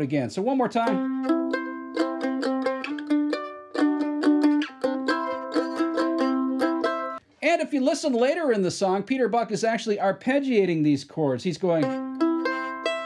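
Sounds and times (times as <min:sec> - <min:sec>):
mandolin strummed and picked: 0:00.4 - 0:07.2, 0:11.5 - 0:13.0.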